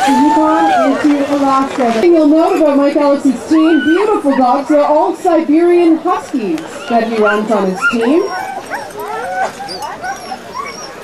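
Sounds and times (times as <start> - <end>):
sled dogs yelping and whining: 3.4 - 5.1, 6.7 - 11.0.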